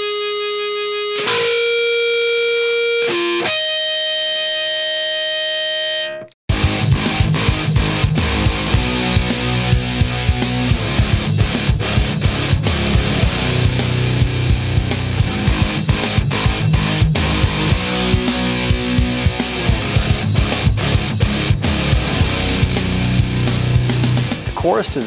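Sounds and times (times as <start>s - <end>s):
distorted electric guitar riff: 0.0s - 25.0s.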